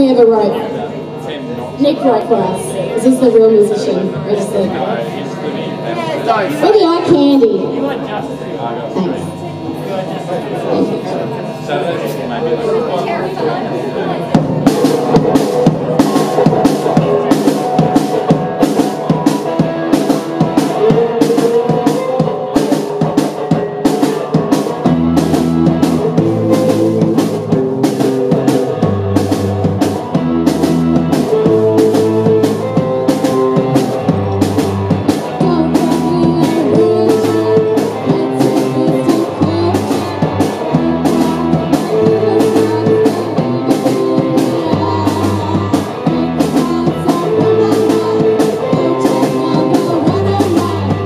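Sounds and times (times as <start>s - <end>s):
electric guitar: 0.0s - 51.0s
electric bass line: 12.6s - 51.0s
drum kit beat: 14.2s - 51.0s.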